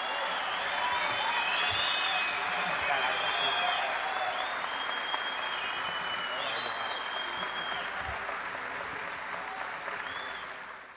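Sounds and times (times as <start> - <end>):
audience applauding: 0.0 - 10.9.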